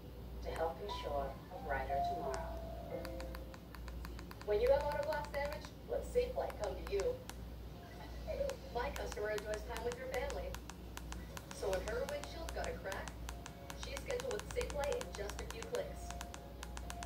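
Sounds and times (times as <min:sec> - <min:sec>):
remote control buttons clicking: 0:02.2 - 0:07.4, 0:08.4 - 0:17.0.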